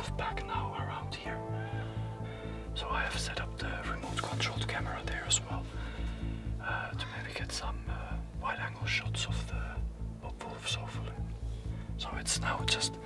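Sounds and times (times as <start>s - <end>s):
man whispering: 0.0s - 1.4s, 2.8s - 5.8s, 6.6s - 11.3s, 12.0s - 13.0s
background music with low bass: 0.0s - 13.0s.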